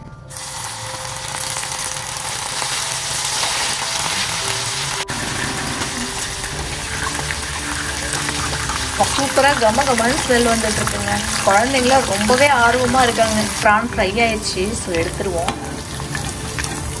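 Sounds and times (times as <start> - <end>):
prawns sizzling in hot oil: 0.3 - 17.0.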